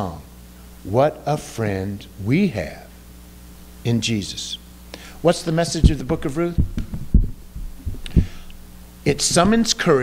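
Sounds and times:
dull low thumps: 5.6 - 8.6, 9.3 - 9.7.

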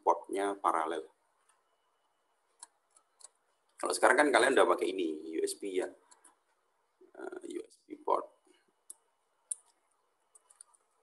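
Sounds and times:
computer mouse clicks: 1.4 - 1.7, 2.5 - 3.8, 6.0 - 6.6, 8.8 - 11.0.

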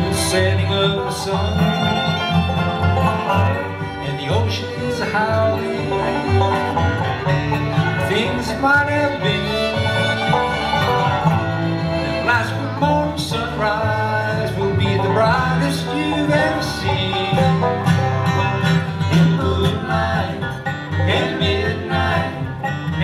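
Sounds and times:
acoustic guitar: 0.0 - 23.0
banjo: 0.0 - 23.0
dobro sliding notes: 0.0 - 23.0
fiddle: 0.0 - 23.0
upright bass: 0.0 - 23.0.

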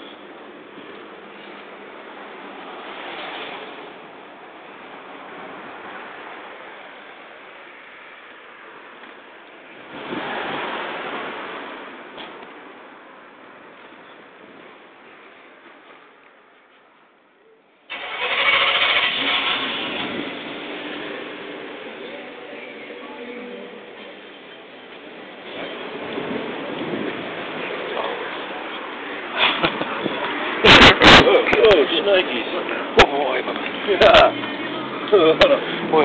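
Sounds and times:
rushing street noise: 0.0 - 36.0
vehicle engine starting: 17.9 - 22.3.

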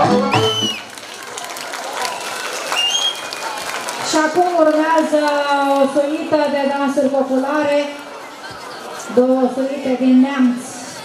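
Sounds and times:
folk music: 0.0 - 0.9
crowd applauding: 0.0 - 6.4
high whistles: 0.1 - 0.9, 2.7 - 3.3.

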